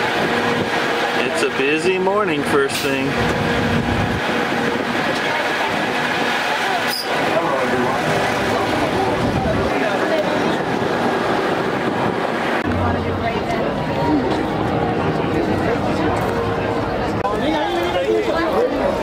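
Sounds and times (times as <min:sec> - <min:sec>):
tram motor and road noise: 0:00.0 - 0:19.0
waiting crowd chatter: 0:00.0 - 0:19.0
riders chattering: 0:04.2 - 0:19.0.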